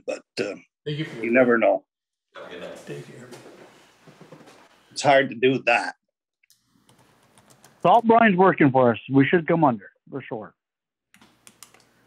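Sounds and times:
man speaking: 0.9s - 1.8s, 2.4s - 3.5s, 7.8s - 10.5s
typing on laptop keyboard: 6.9s - 7.9s, 11.2s - 11.9s.

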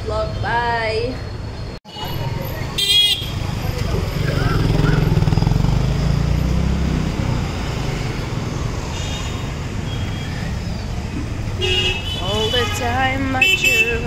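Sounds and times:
vehicle engine passing: 2.2s - 11.6s.

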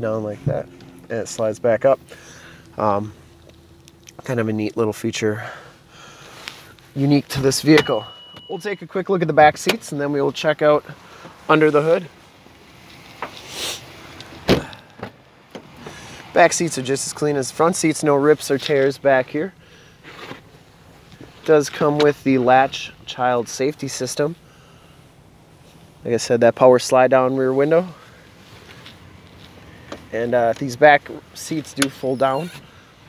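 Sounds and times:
vehicle cab background noise: 0.0s - 33.0s
soft rustle: 6.2s - 7.4s, 25.4s - 26.0s, 27.4s - 31.7s
car door clunk: 7.4s - 8.6s, 14.4s - 16.0s.

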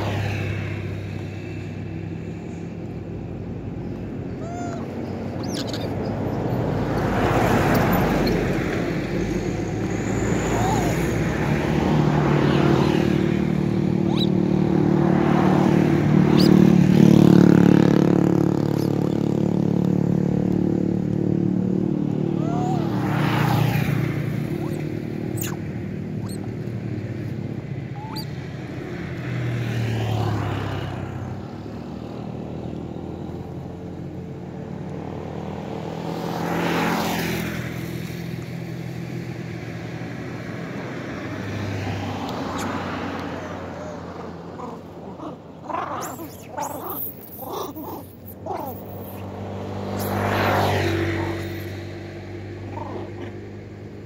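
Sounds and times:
vehicles passing: 0.0s - 54.0s.

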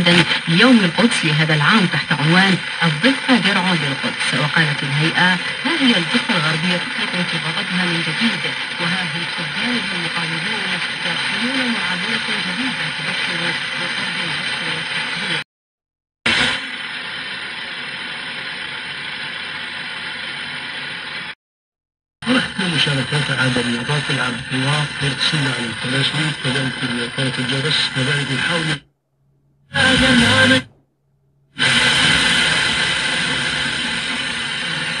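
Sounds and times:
radio static hiss: 0.0s - 15.4s, 16.3s - 21.4s, 22.2s - 28.9s, 29.7s - 30.7s, 31.6s - 35.0s.

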